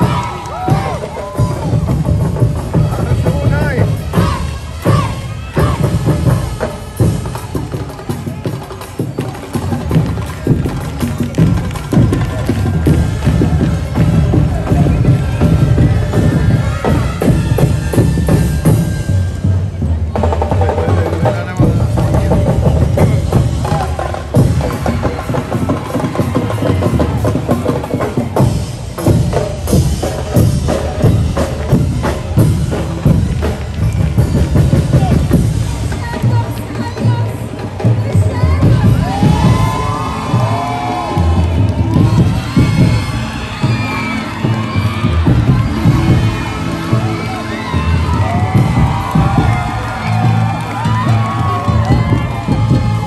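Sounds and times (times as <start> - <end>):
crowd cheering and shouting: 0.0 - 53.0
street-dance music: 0.0 - 53.0
fast dense drumming: 9.6 - 36.5, 37.1 - 53.0.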